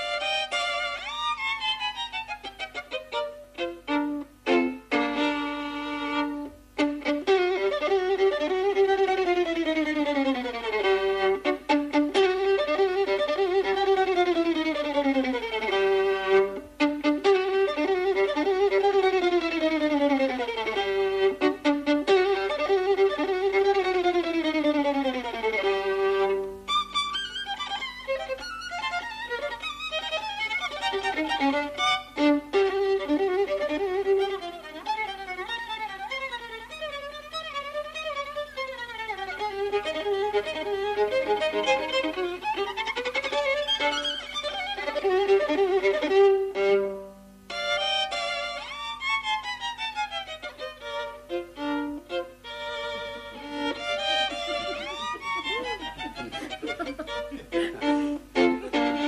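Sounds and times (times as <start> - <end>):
solo violin fast passage: 0.0 - 59.0.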